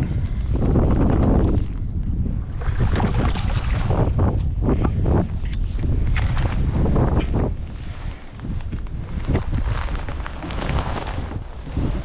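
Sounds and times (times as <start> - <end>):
wind buffeting microphone: 0.0 - 12.0
water slapping against boat: 2.5 - 4.6.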